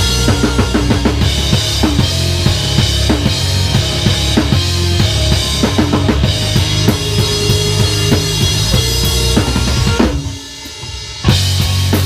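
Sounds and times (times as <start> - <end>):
drums with kick and snare: 0.0 - 12.0
rock band playing loud: 0.0 - 12.0.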